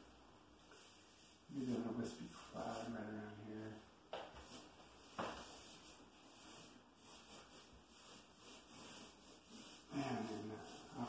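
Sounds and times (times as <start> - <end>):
paintbrush rubbing on wall: 0.6 - 11.0.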